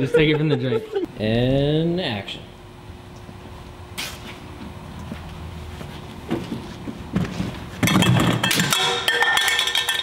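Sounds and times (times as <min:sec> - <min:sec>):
metal goblet clinking: 0:08.3 - 0:10.0.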